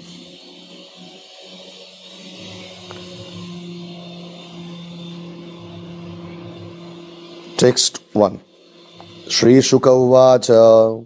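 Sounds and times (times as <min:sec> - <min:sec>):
steady held tone: 0:00.0 - 0:11.0
higher tone: 0:02.3 - 0:10.9.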